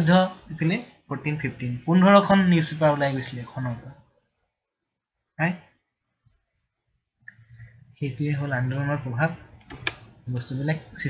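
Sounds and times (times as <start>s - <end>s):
computer mouse clicks: 7.3s - 8.7s, 9.6s - 10.2s.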